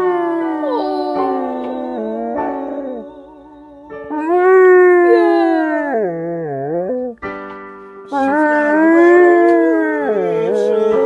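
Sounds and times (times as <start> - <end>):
dog howling: 0.0 - 7.2, 8.1 - 11.0
music: 0.0 - 11.0.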